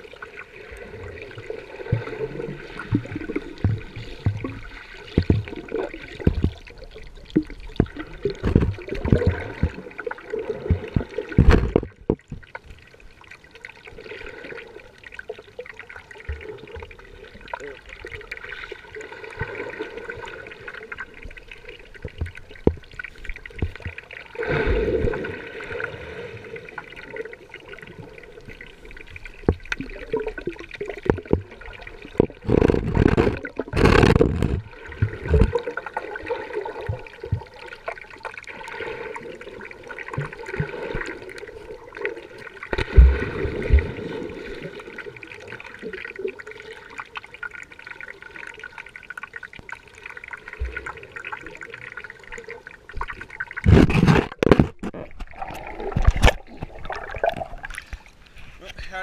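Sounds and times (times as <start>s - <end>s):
muffled underwater churning and bubbles: 0.0s - 59.0s.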